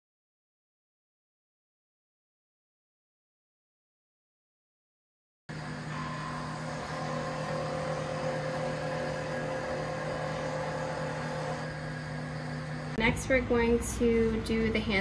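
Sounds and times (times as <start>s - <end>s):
steady hum with held tones: 5.5s - 15.0s.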